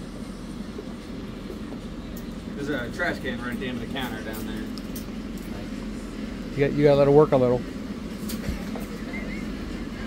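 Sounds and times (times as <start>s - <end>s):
shop background hum: 0.0s - 10.0s.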